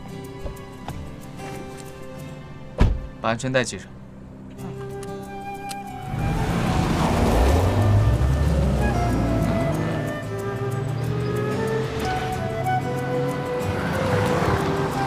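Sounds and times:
background music with sustained tones: 0:00.0 - 0:15.0
sports car accelerating past: 0:06.0 - 0:10.2, 0:13.6 - 0:15.0.

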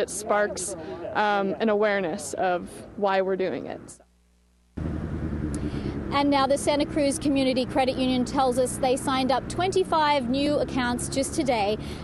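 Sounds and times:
street traffic rumble: 0:00.0 - 0:04.1, 0:04.8 - 0:12.0
motorcycle passing: 0:04.8 - 0:12.0.

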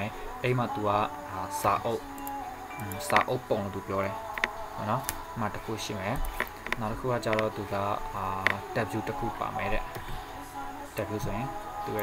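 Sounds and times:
person talking or singing: 0:00.0 - 0:02.2, 0:02.8 - 0:10.0, 0:10.6 - 0:12.0
steady high hum: 0:00.0 - 0:12.0.

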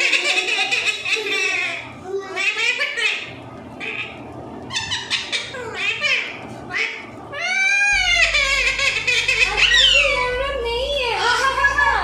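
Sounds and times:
parakeet squawking: 0:00.0 - 0:10.5.

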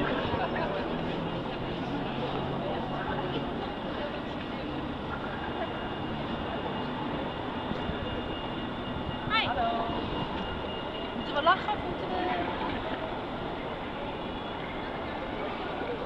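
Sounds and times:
distant traffic: 0:00.0 - 0:16.0
people in background: 0:00.0 - 0:16.0.

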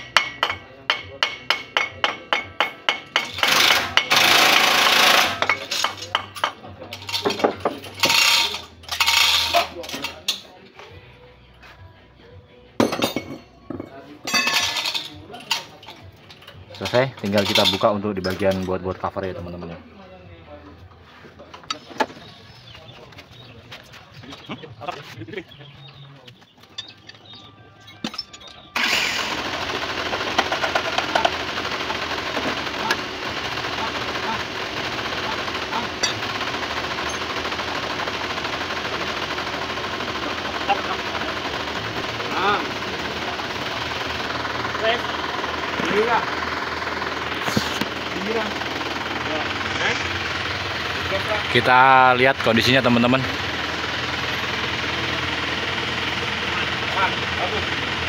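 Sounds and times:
diesel engine idling roughly: 0:00.9 - 0:05.6, 0:28.5 - 0:58.0.

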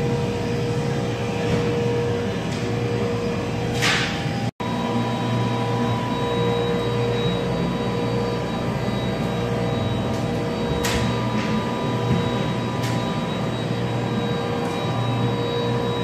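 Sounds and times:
factory machinery drone: 0:00.0 - 0:16.0.

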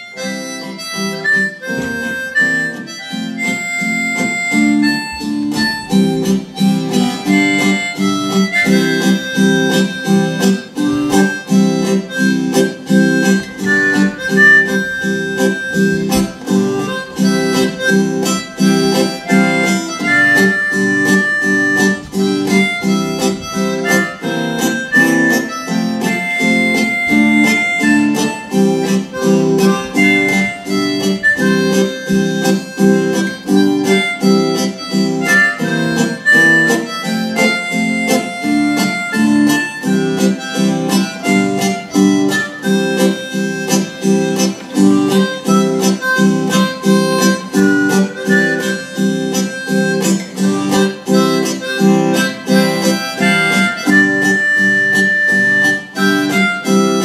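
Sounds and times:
harmonica melody: 0:00.0 - 0:57.0
strummed acoustic guitar: 0:00.0 - 0:57.0.

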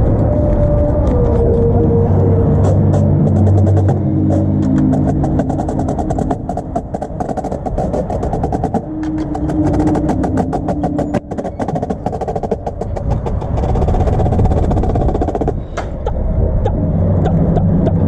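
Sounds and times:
low sustained chords: 0:00.0 - 0:12.8.

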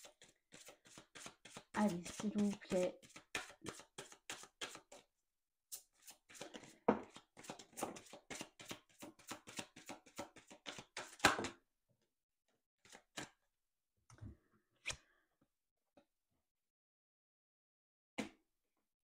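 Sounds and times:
cards shuffled by hand: 0:00.1 - 0:05.1, 0:05.8 - 0:11.5.

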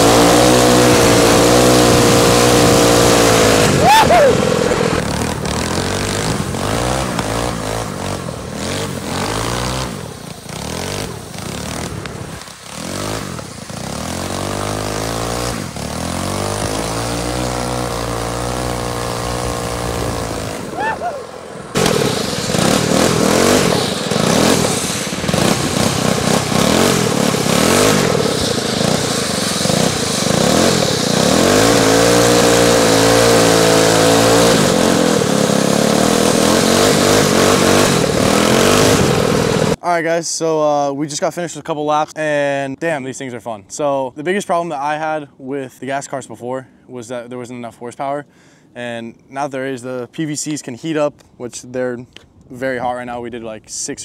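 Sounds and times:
kart engines revving: 0:00.0 - 0:39.8.

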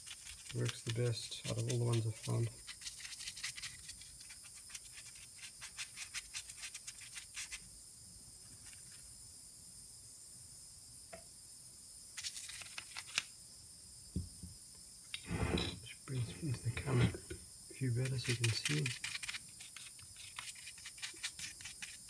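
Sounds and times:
brush scrubbing metal: 0:00.0 - 0:07.4, 0:18.0 - 0:22.0.

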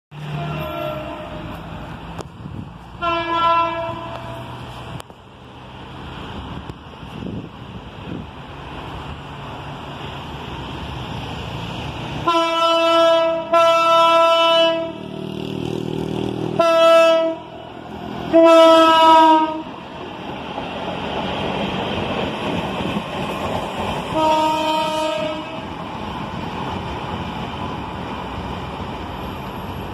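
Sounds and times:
low train rumble: 0:00.1 - 0:29.9
locomotive air horn blasts: 0:00.2 - 0:01.7, 0:03.0 - 0:04.6, 0:12.2 - 0:15.1, 0:16.6 - 0:17.6, 0:18.3 - 0:19.7, 0:24.1 - 0:25.7.

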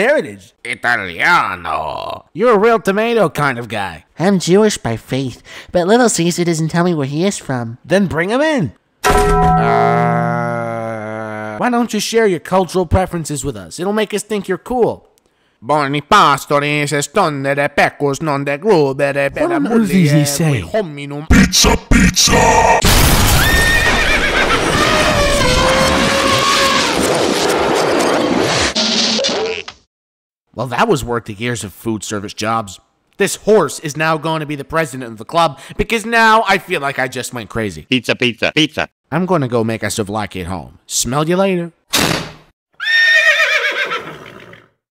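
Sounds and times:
distorted horse whinny: 0:23.4 - 0:27.1, 0:42.8 - 0:44.8.

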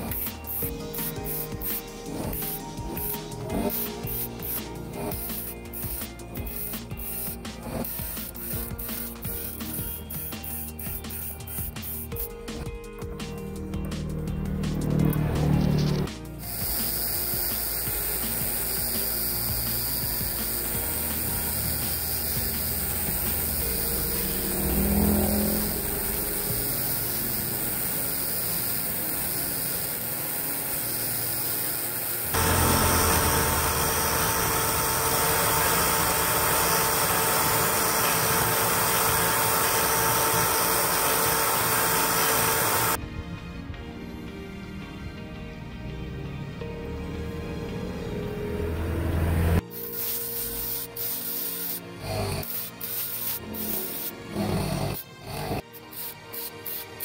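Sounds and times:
steady whine: 0:14.8 - 0:43.0
power tool grinding whir: 0:16.4 - 0:43.0, 0:51.8 - 0:55.9.

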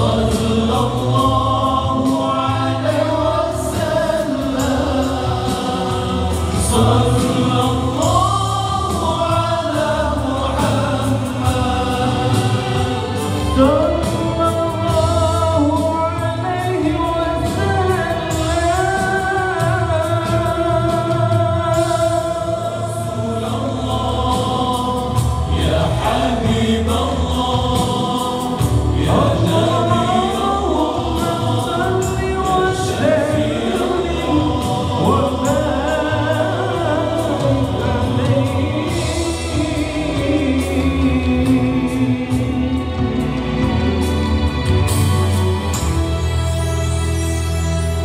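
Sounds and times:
steady low vocal part: 0:00.0 - 0:46.6
male vocal group singing in harmony: 0:00.0 - 0:48.0.

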